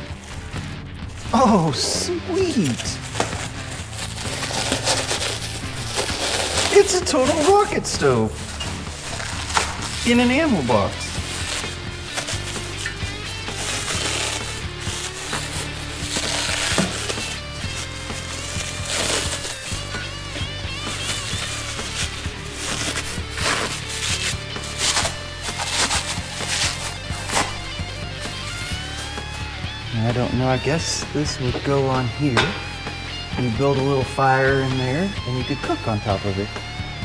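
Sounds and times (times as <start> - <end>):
plastic wrapping rustling: 0.0 - 32.8
background music with bass line: 0.0 - 37.0.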